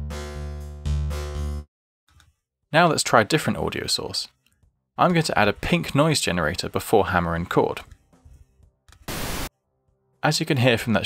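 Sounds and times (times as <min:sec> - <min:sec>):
pink noise hiss: 0:09.1 - 0:09.5.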